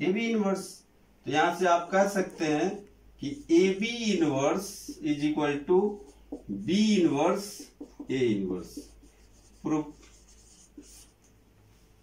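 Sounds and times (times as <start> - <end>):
marker writing on whiteboard: 2.0 - 11.4.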